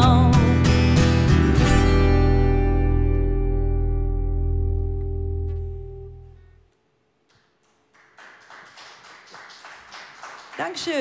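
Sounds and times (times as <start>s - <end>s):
audience applause: 7.8s - 11.0s.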